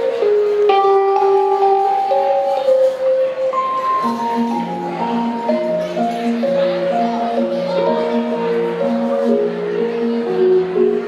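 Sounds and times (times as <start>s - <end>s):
keyboard long held notes: 0.0s - 11.0s
electric guitar held notes: 0.2s - 6.6s.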